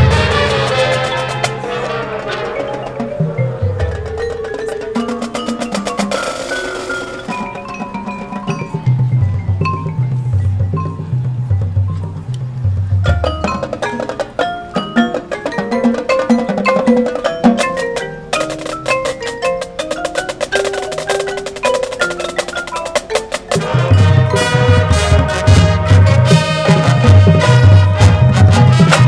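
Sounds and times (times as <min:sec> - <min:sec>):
marimbas and vibraphones playing: 0:00.0 - 0:29.0.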